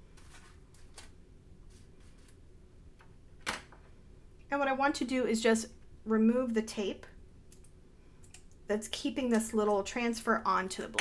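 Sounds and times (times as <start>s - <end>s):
paper rustling: 0.1s - 2.4s.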